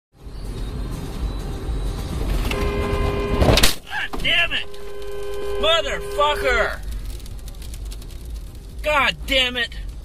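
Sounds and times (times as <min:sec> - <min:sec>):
car cabin road and engine noise: 0:00.2 - 0:10.0
car braking hard: 0:02.3 - 0:06.9
steady multi-tone sound: 0:02.5 - 0:07.6.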